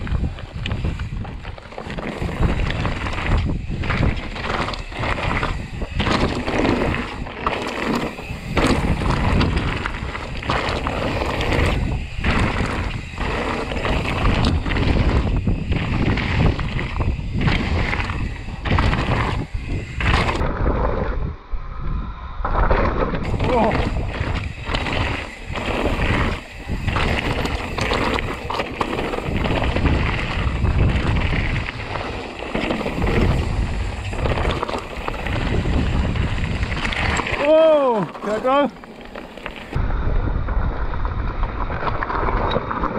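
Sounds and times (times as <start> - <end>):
bike tyres crunching over stones: 0.0 - 21.1, 22.4 - 42.9
bike rattling: 0.0 - 21.2, 22.4 - 42.9
wind on microphone: 0.0 - 42.9.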